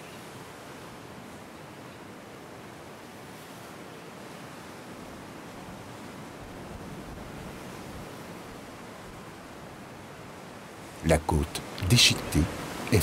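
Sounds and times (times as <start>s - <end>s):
sea surf: 0.0s - 13.0s.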